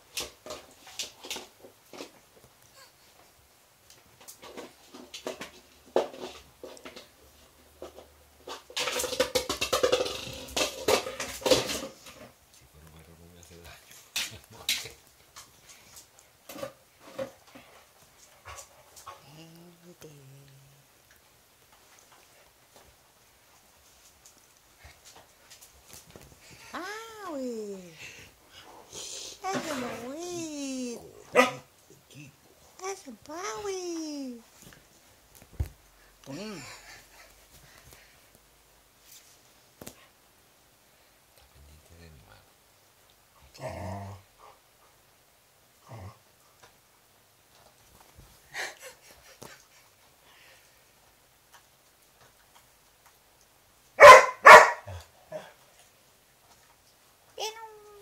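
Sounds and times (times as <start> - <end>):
dog crying: 26.6 - 28.0
dog barking: 31.3 - 31.7, 54.0 - 55.0.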